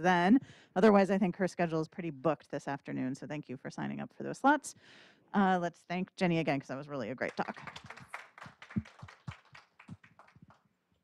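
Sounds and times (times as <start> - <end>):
audience applauding: 7.2 - 10.6.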